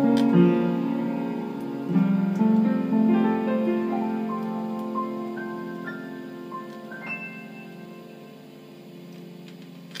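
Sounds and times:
piano chord ringing out: 0.0 - 10.0.

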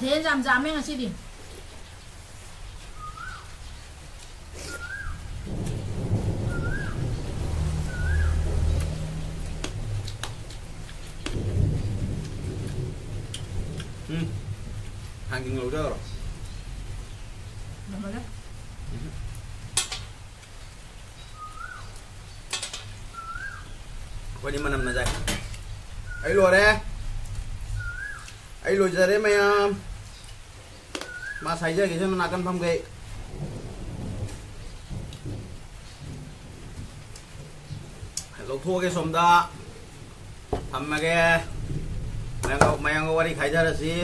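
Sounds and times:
bird whistling call: 2.9 - 3.5, 4.6 - 5.2, 6.4 - 7.0, 7.9 - 8.4, 21.3 - 22.0, 23.1 - 23.8, 26.0 - 26.4, 27.8 - 28.4, 31.0 - 31.5
low rumble: 5.1 - 20.9, 39.7 - 44.0
rising and falling chirps: 6.4 - 8.6.

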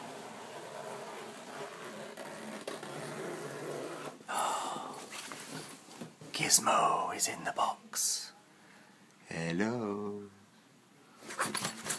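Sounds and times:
zip being drawn open: 0.0 - 4.2.

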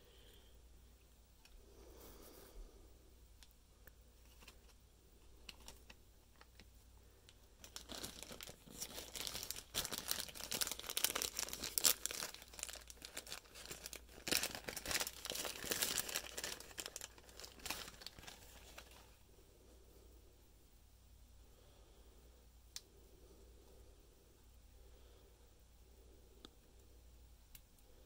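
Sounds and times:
packaging crinkling: 7.4 - 19.2.

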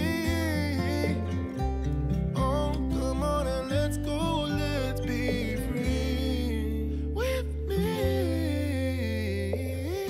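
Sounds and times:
hummed vocal line: 2.4 - 10.0.

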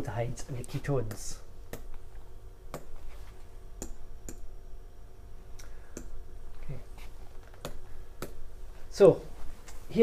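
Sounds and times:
low steady hum: 0.0 - 10.0
sharp taps on a whiteboard: 7.6 - 8.4.

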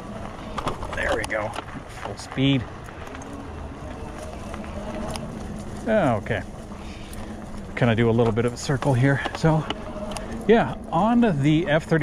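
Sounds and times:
tyres rumbling on dirt: 0.0 - 12.0.

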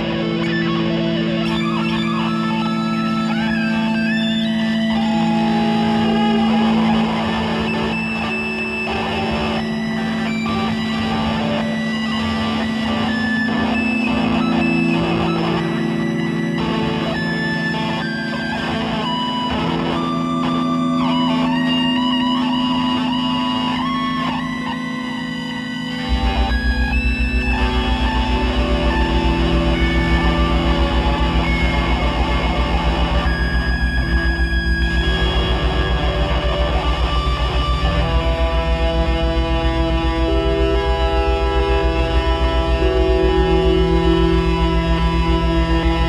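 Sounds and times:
electric guitar droning: 0.0 - 46.0
low fast-pulsing tone: 26.1 - 46.0.

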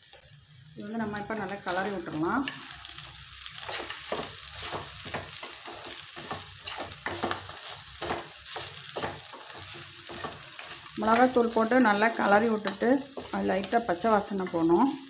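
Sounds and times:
meat and onions sizzling in a pan: 0.0 - 15.0
wooden spatula scraping a pan: 3.5 - 14.8.

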